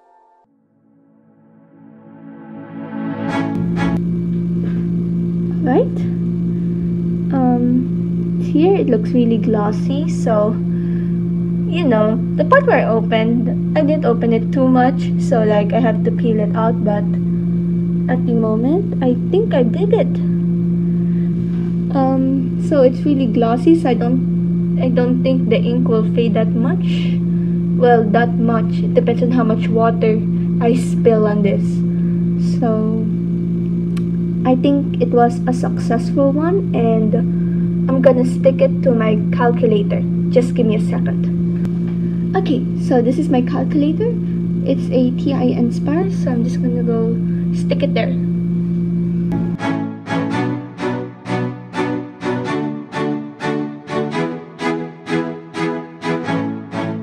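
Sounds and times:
steady low hum: 0.9s - 57.0s.

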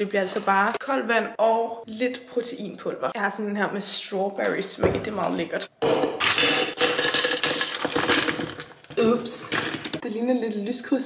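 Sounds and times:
frozen fruit rattling into blender: 6.2s - 10.0s.

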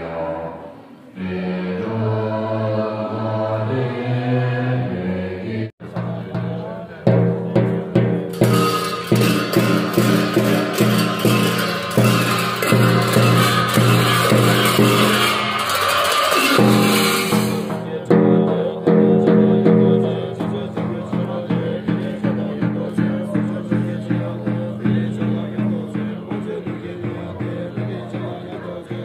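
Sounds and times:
frame drum beats: 5.8s - 29.0s
hand cymbals clashing: 8.0s - 18.4s.

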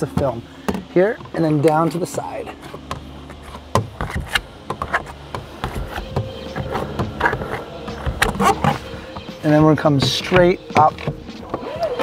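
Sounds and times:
squeegee squeaks: 2.5s - 12.0s.

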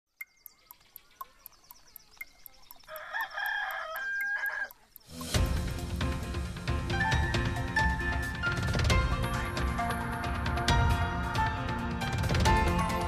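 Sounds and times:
clock ticking: 0.1s - 6.0s
rooster crowing: 2.9s - 4.8s
music jingle with drums: 5.1s - 13.0s.

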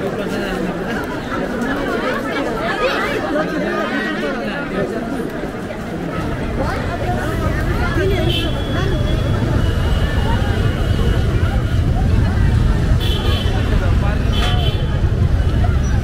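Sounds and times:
crowd chatter: 0.0s - 16.0s
motorcycles and cars rumbling: 5.1s - 16.0s.

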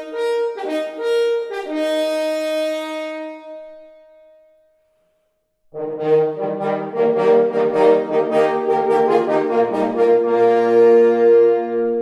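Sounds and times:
french horns playing a fanfare: 5.8s - 12.0s.

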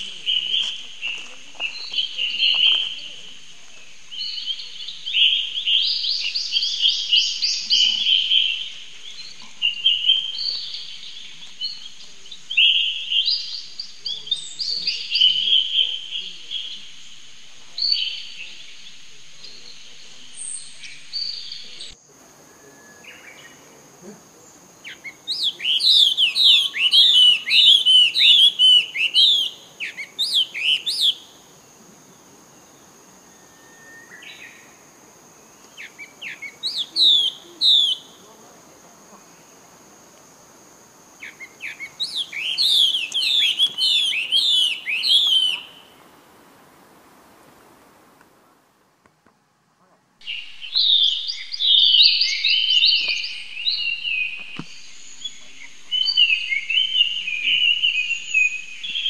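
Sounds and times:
bird whistling song: 24.8s - 31.4s, 33.3s - 34.8s, 35.6s - 38.3s, 41.2s - 46.0s, 50.2s - 59.0s
faint steady high tone: 33.1s - 34.9s.

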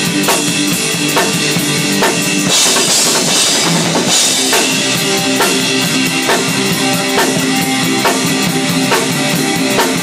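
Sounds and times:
drum kit playing rock beat: 0.0s - 10.0s
rock recording with guitar: 0.0s - 10.0s.

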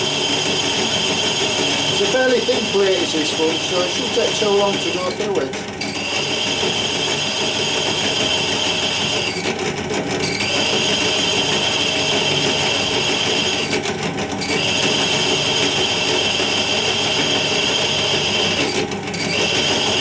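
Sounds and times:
drill grinding through ceramic: 0.0s - 20.0s.

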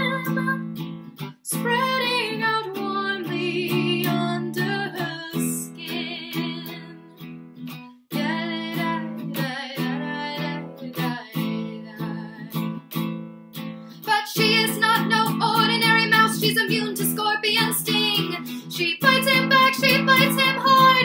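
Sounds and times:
baritone ukulele strumming chords: 0.0s - 21.0s.

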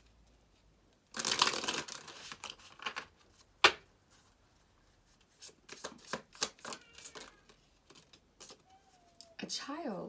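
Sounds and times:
cards being shuffled: 5.2s - 8.7s.

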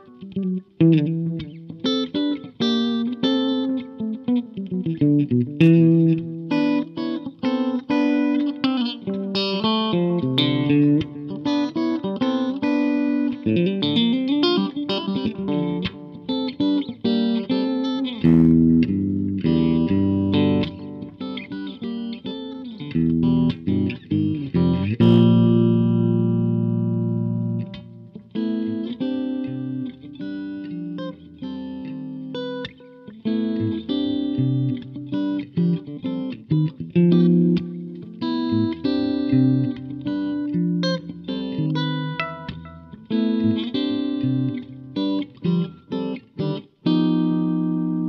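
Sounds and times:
electric guitar jazz-fusion playing: 0.0s - 48.0s.

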